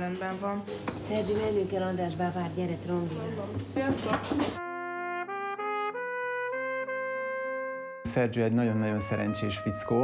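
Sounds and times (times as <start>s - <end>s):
voices at a dinner table: 0.0s - 4.6s
trumpet playing slow melody: 4.6s - 10.0s.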